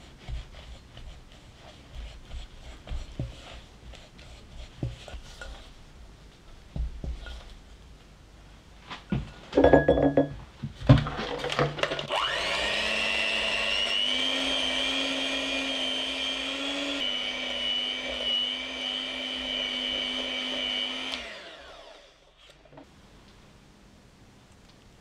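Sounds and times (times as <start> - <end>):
electric hand mixer whining: 12.0 - 22.3.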